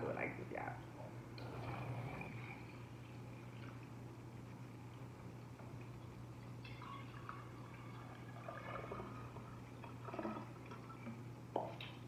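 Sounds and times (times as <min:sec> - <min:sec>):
liquid pouring into glass carafe: 0:05.8 - 0:11.8.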